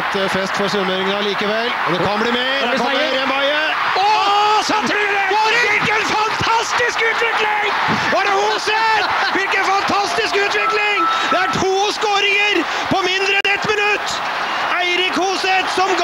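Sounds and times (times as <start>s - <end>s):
man shouting excitedly: 2.6s - 16.0s.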